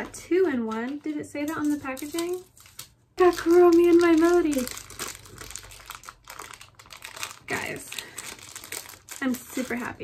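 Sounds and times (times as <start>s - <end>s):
plastic packet crinkling: 0.8s - 10.0s.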